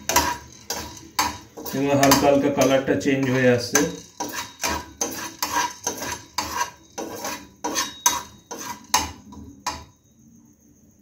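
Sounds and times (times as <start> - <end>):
spatula scraping a pan: 0.0 - 9.9.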